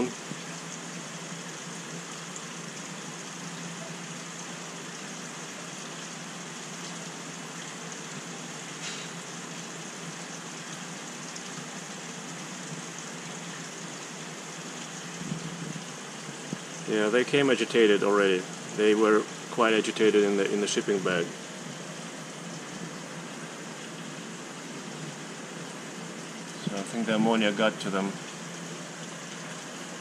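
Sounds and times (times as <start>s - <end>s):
aquarium water trickling: 0.0s - 30.0s.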